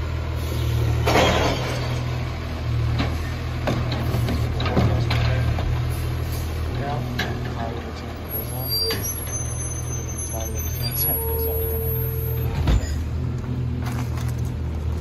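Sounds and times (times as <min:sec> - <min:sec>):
garbage truck diesel engine droning: 0:00.0 - 0:15.0.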